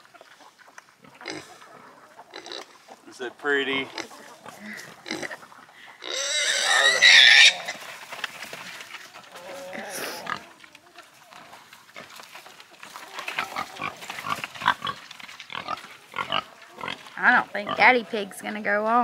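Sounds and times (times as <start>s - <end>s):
piglet squealing: 6.0s - 7.7s.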